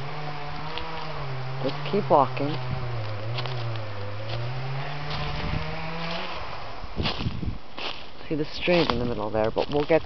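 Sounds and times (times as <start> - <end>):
crunching footsteps in leaves: 0.0 - 10.0
vehicle engine droning: 0.0 - 10.0.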